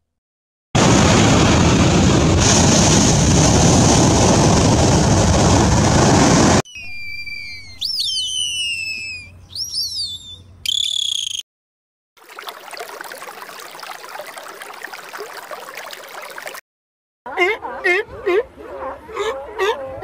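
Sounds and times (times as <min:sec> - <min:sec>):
dolphin whistles: 0:06.7 - 0:11.4.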